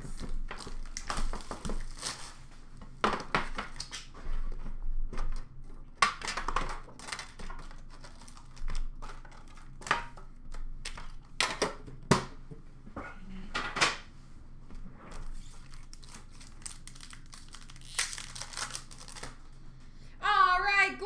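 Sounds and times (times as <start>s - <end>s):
foil packs rustling: 0.0s - 2.8s, 6.8s - 9.8s, 15.2s - 19.4s.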